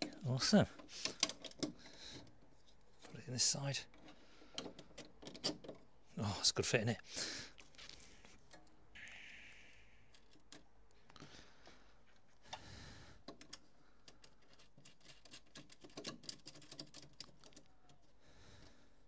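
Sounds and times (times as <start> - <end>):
brief hiss: 9.0 - 10.1.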